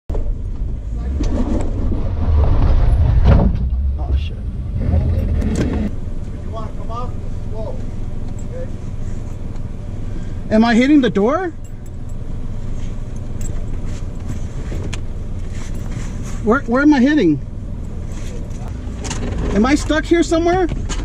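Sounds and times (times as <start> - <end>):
engine running under load: 0.1 - 21.0.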